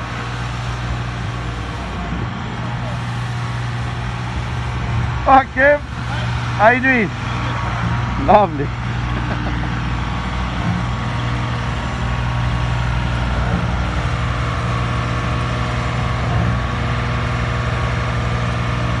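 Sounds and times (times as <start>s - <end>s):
low engine drone: 0.0s - 19.0s.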